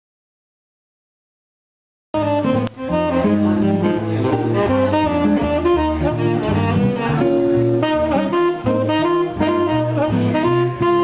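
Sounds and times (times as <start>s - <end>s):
double bass: 2.2s - 11.0s
jazz guitar: 2.2s - 11.0s
saxophone: 2.2s - 11.0s.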